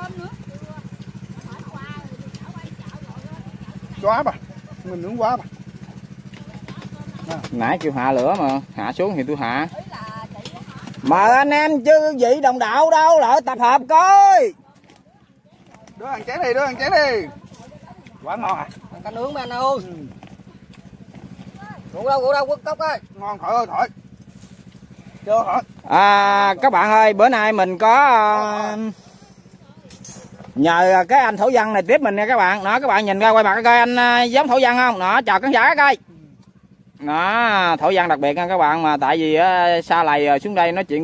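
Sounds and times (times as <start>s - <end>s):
faint voices talking: 0.0s - 11.4s, 14.1s - 32.8s
pump motor running: 0.0s - 41.0s
small engine chugging: 0.0s - 41.0s.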